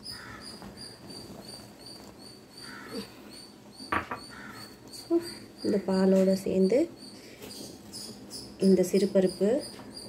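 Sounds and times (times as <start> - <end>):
faint high chirping: 0.0 - 10.0.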